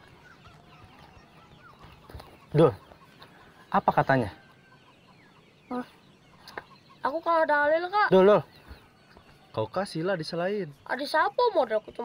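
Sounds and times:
chicken clucking: 1.8s - 5.1s.

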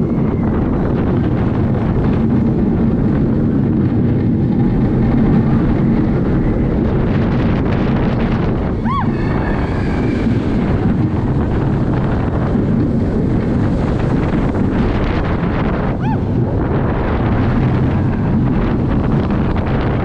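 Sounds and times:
air buffeting microphone: 0.0s - 20.0s
roller coaster wheels rumbling: 0.0s - 20.0s.

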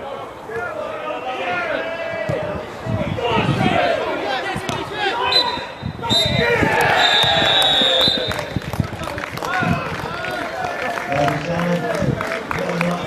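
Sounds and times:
spectators shouting: 0.0s - 11.5s
referee's whistle blasts: 5.2s - 8.5s.

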